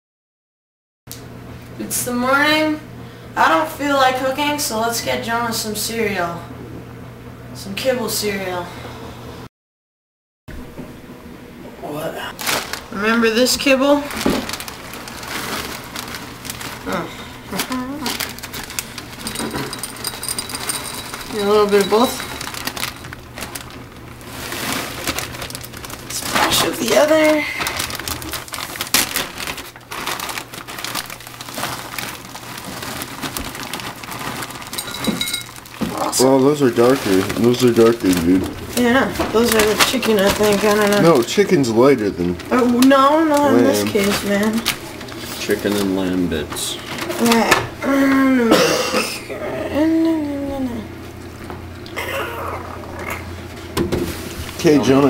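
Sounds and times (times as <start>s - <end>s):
plastic bag crinkling: 12.3s - 47.6s, 54.1s - 55.0s
kibble clattering into bowl: 19.2s - 23.2s, 34.7s - 35.6s
harsh cough-like rasp: 48.5s - 49.3s.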